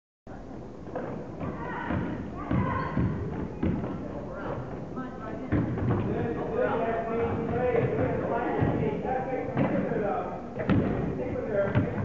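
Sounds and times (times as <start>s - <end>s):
voices of players and spectators: 0.3s - 12.0s
basketball bouncing: 0.9s - 4.0s.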